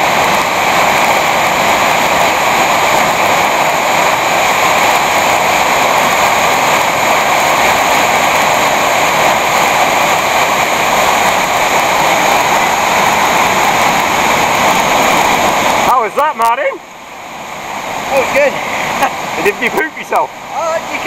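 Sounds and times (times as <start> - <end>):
waterfall roaring: 0.0 - 21.0.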